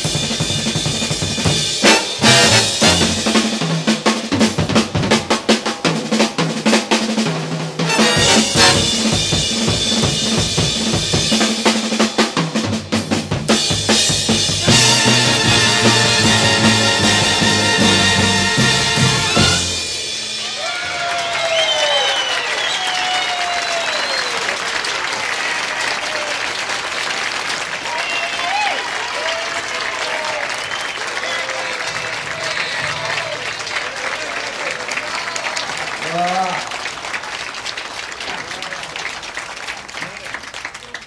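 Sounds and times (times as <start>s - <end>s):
group applause: 20.4s - 41.0s.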